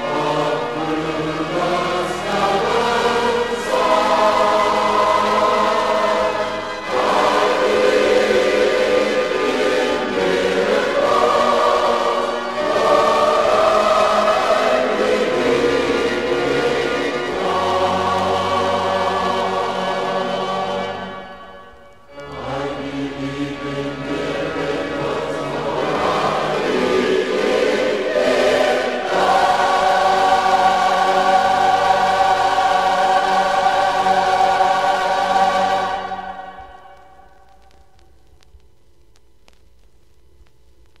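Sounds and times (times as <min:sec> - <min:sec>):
choir singing a hymn: 0:00.0 - 0:37.3.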